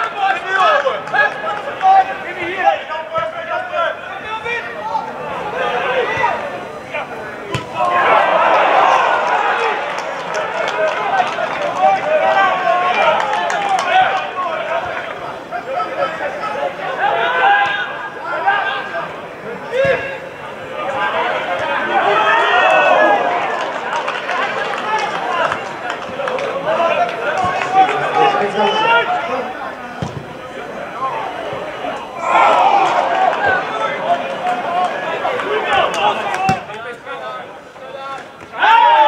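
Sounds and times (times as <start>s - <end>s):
men calling and shouting: 0.0s - 39.0s.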